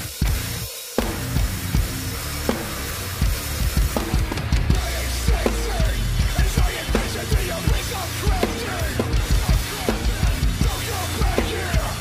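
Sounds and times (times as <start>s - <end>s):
acoustic drum kit played hard: 0.0s - 12.0s
heavy hardcore backing track: 0.0s - 12.0s.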